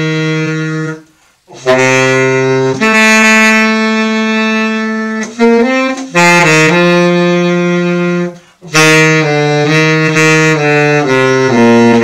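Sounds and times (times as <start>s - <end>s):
tenor saxophone long note: 0.0s - 12.0s.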